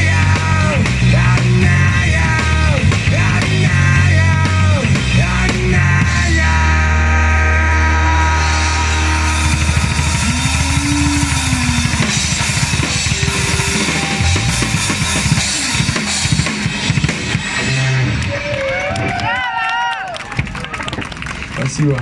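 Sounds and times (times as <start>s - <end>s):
electric guitar: 0.0s - 19.4s
drum fills and cymbal crashes: 8.4s - 18.1s
wavering gliding pitched sound: 9.0s - 16.2s.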